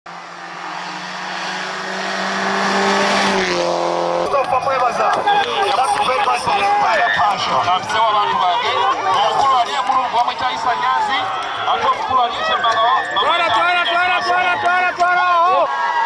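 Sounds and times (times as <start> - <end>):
rally car engine passing: 0.1 - 14.6
many overlapping voices: 4.4 - 16.0.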